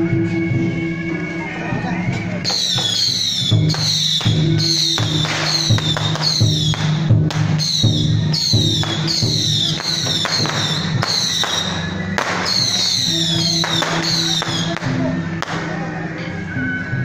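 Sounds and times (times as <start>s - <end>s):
percussion with ringing strokes: 0.0s - 17.0s.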